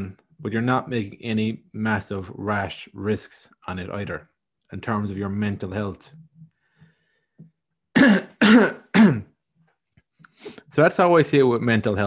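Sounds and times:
man clearing his throat: 8.0s - 9.3s.

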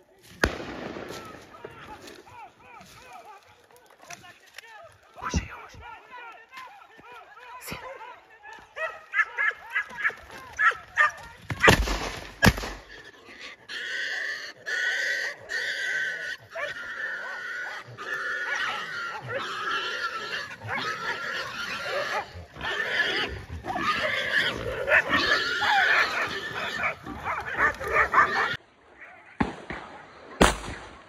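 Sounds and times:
dogs barking and yapping: 7.5s - 11.8s, 12.9s - 29.4s
wild boar squealing: 8.8s - 11.8s, 12.4s - 29.3s.

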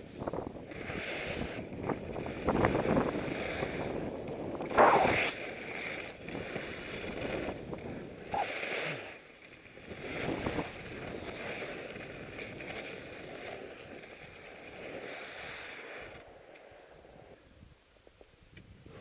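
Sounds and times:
skis scraping over snow: 0.0s - 19.0s.

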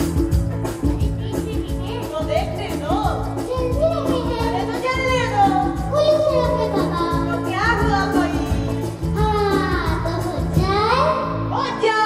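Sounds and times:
instrumental accompaniment with beat: 0.0s - 11.5s
girl singing into a microphone: 8.4s - 11.4s.

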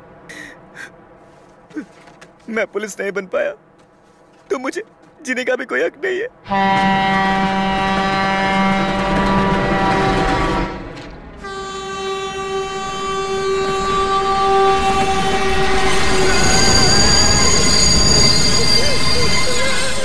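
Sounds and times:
train rushing rumble: 6.3s - 20.0s
locomotive horn blaring: 6.4s - 20.0s
high steady squealing: 14.8s - 20.0s.

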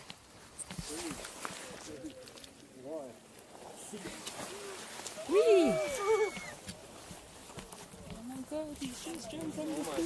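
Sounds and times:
quiet talking: 7.6s - 10.0s.

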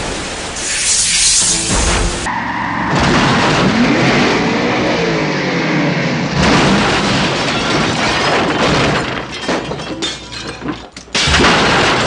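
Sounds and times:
loud truck crash: 0.0s - 12.0s
car engines revving: 1.5s - 8.0s.

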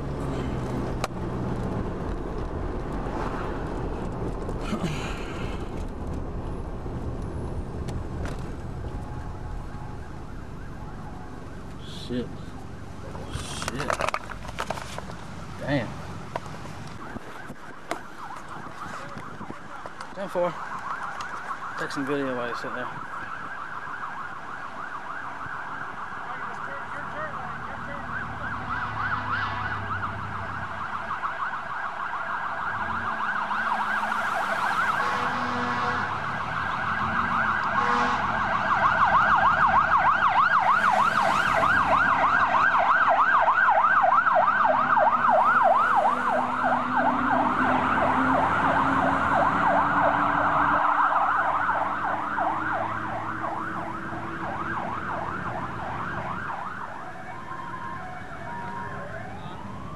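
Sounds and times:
emergency siren yelping: 8.6s - 13.5s, 16.8s - 59.9s.

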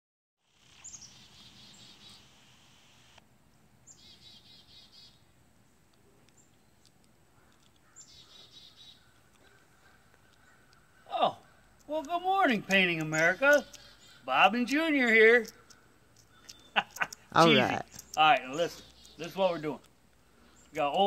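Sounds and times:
songbird singing faintly: 0.4s - 21.0s.

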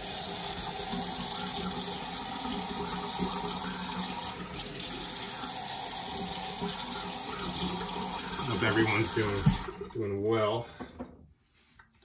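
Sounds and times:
tap water running into sink: 0.0s - 10.0s.

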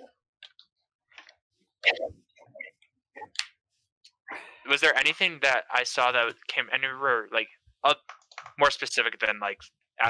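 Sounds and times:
person's voice: 4.3s - 7.4s, 8.4s - 9.7s.

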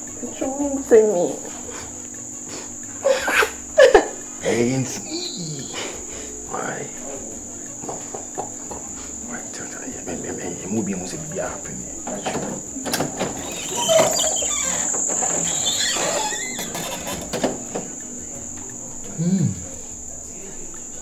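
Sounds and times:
crickets trilling: 0.0s - 21.0s.

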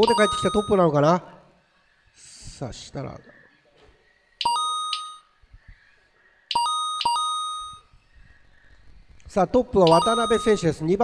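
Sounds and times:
electronic lap-timing chimes: 0.0s - 1.0s, 4.4s - 5.4s, 9.8s - 11.0s.

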